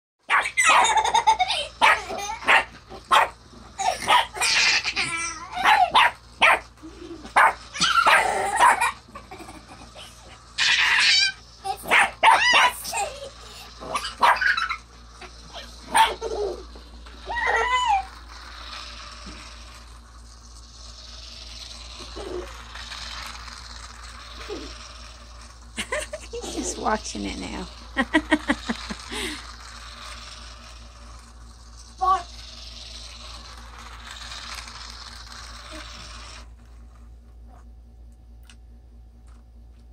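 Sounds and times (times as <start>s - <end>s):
puppy barking and yipping: 0.3s - 1.0s, 1.8s - 3.4s, 4.0s - 4.6s, 5.6s - 6.6s, 7.4s - 9.0s, 10.6s - 12.9s, 13.9s - 14.8s, 15.9s - 16.2s.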